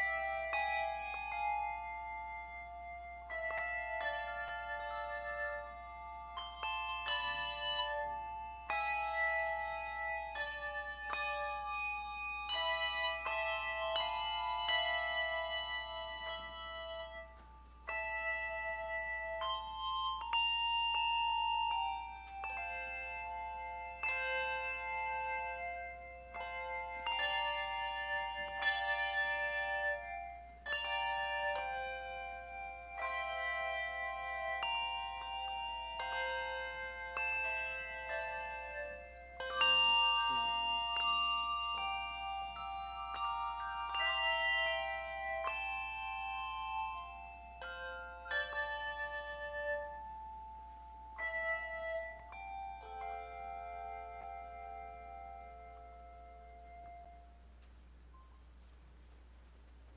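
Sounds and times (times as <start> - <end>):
handbell choir playing: 0.0 - 57.4.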